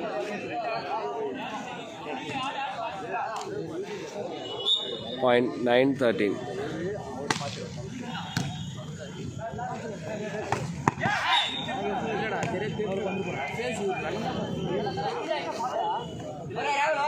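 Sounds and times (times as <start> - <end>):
people chattering and calling out: 0.0 - 17.0.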